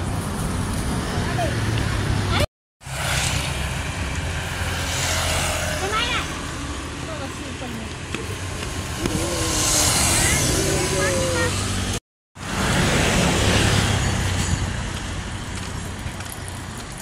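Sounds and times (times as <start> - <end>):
motorbike engines running: 0.0 - 17.0.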